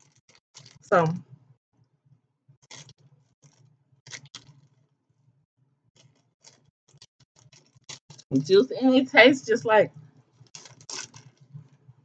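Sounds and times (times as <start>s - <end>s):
person chewing: 2.7s - 4.6s, 10.5s - 11.3s.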